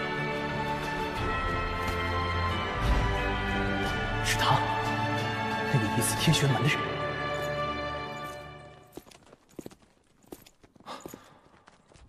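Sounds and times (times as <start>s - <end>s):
background music: 0.0s - 9.2s.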